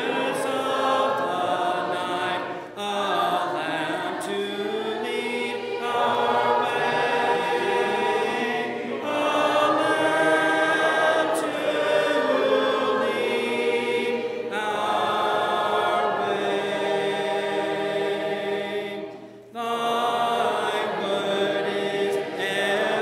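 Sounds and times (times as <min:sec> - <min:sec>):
group singing a hymn a cappella: 0:00.0 - 0:23.0.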